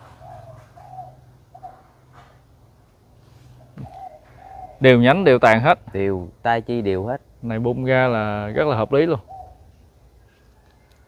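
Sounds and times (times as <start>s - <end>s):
dove cooing: 0.0s - 2.5s, 3.3s - 5.3s, 8.6s - 11.0s.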